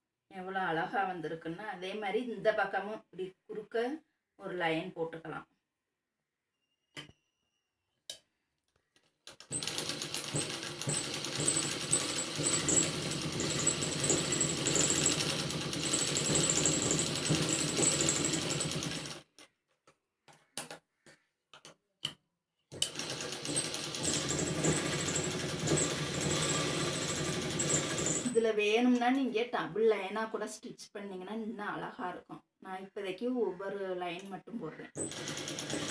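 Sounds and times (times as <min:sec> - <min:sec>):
sewing machine stitching: 0:09.3 - 0:19.3, 0:22.8 - 0:28.4, 0:35.0 - 0:35.9.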